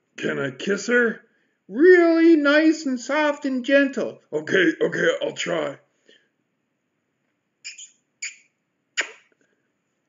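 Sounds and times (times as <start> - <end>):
lips kissing sounds: 7.6 - 9.4.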